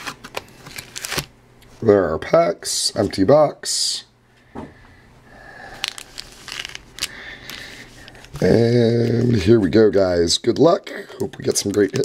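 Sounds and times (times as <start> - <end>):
rustling and crinkling packs: 0.0 - 1.3, 5.7 - 9.8, 11.2 - 12.0.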